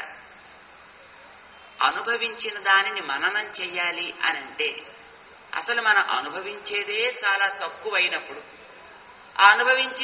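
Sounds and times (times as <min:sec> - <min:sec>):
high-pitched background hiss: 0:00.0 - 0:10.0.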